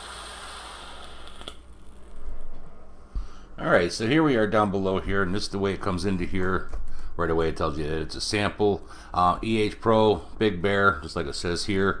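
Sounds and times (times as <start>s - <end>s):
vape hiss of air: 0.0s - 2.0s.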